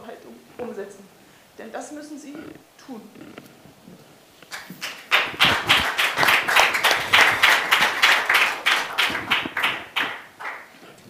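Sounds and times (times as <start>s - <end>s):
hands clapping in applause: 4.5s - 10.8s.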